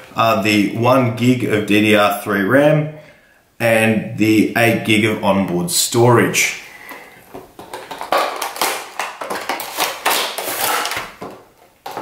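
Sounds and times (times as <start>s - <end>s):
cardboard and plastic rustling: 6.9s - 12.0s.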